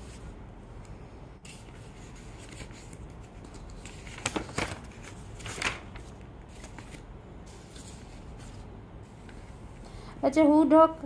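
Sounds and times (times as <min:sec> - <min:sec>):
paper page turning: 0:01.4 - 0:08.7.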